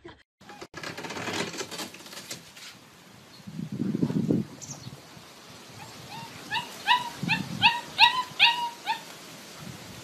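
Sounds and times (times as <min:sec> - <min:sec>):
puppies yipping and whimpering: 0:05.8 - 0:09.1.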